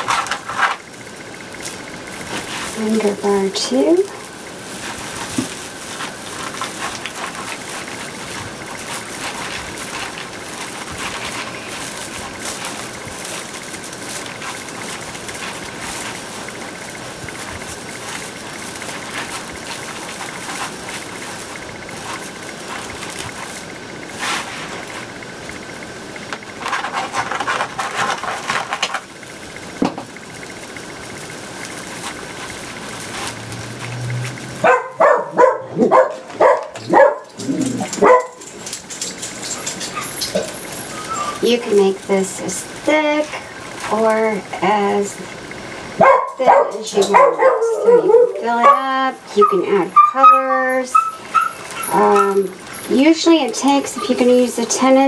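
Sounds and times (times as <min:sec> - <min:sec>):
plastic mesh crinkling: 0:00.0 - 0:55.0
dog barking: 0:34.6 - 0:38.5, 0:46.0 - 0:52.5.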